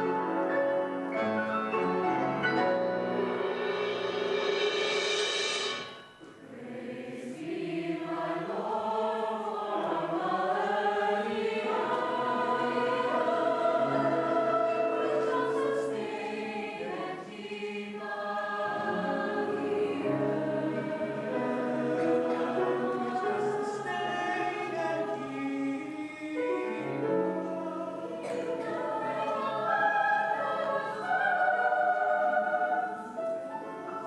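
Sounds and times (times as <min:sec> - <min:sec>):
mixed choir singing: 0:06.3 - 0:34.0.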